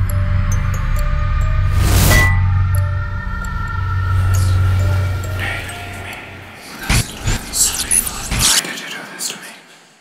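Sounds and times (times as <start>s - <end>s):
low rumbling drone: 0.0s - 8.4s.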